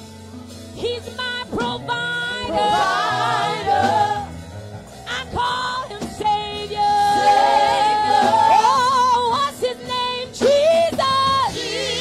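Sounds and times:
women singing gospel: 1.5s - 4.3s, 5.2s - 12.0s.

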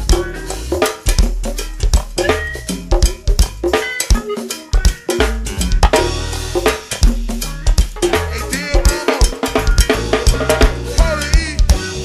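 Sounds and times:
cowbell: 0.0s - 12.0s
live band groove: 0.0s - 12.0s.

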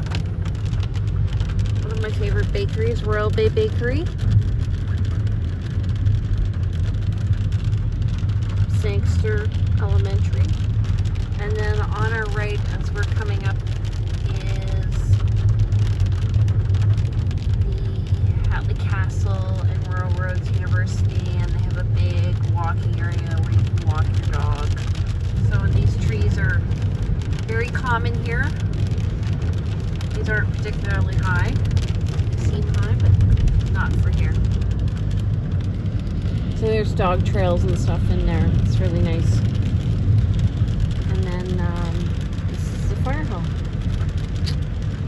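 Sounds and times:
car engine rumble: 0.0s - 45.0s
tyres on wet road: 0.0s - 45.0s
person talking: 41.1s - 43.5s.

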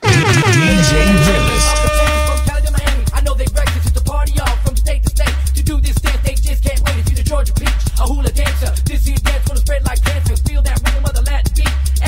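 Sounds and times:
person speaking: 0.0s - 1.9s
air horn sound effect: 0.0s - 3.1s.

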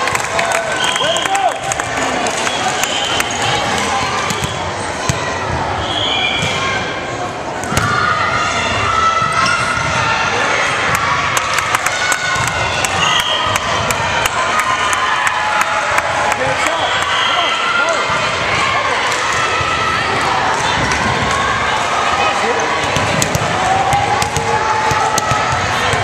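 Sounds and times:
volleyball bouncing and struck: 7.6s - 8.0s, 22.8s - 26.0s.

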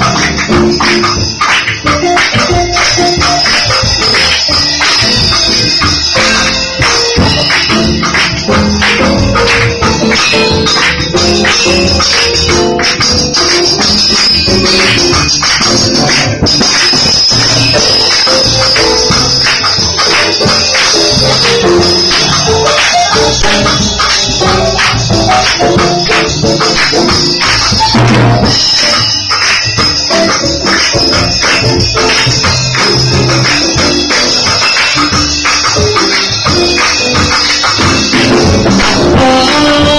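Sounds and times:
audience clapping along: 0.0s - 39.9s
keyboard notes: 0.0s - 39.9s
sharp percussive beat: 0.0s - 39.9s.

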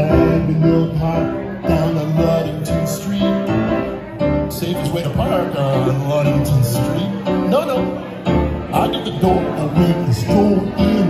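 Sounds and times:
grand piano playing: 0.0s - 11.0s.

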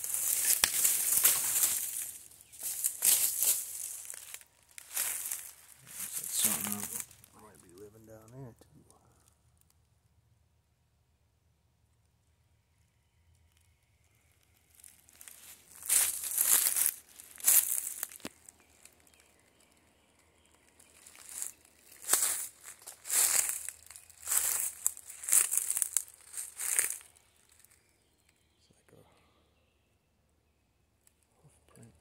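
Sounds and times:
footsteps crunching through dry leaves: 0.0s - 7.5s, 14.7s - 19.7s, 20.8s - 27.8s.

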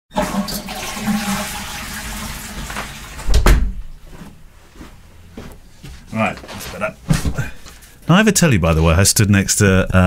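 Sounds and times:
toilet flushing: 0.1s - 3.2s.

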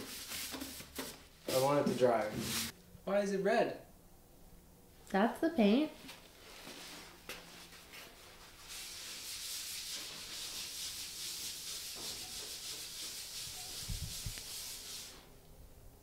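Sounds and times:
cloth rag rubbing on metal roof: 0.0s - 2.8s, 6.4s - 15.3s.

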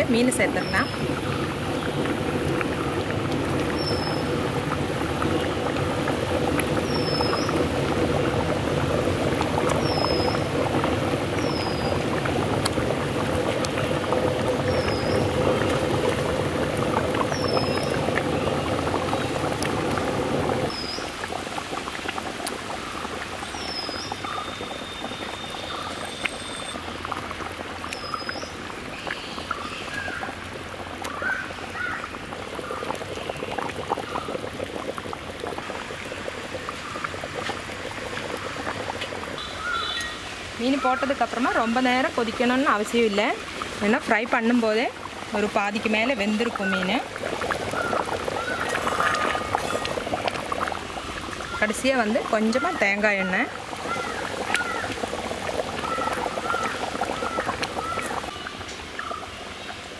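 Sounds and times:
curry bubbling in a pot: 0.0s - 59.9s.

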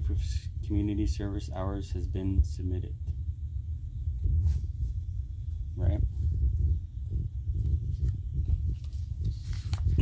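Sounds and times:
paper handling rumble: 7.5s - 10.0s
paper rustling: 7.9s - 10.0s.

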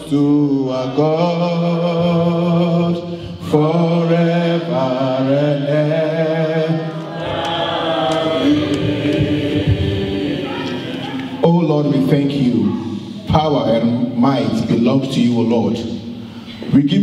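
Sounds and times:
man singing into a microphone: 0.0s - 7.0s
worship singing over loudspeakers: 0.0s - 16.1s.

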